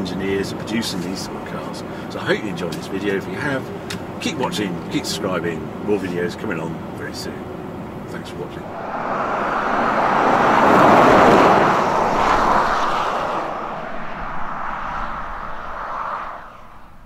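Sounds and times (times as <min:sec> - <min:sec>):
car tyre and road noise: 0:08.2 - 0:17.0.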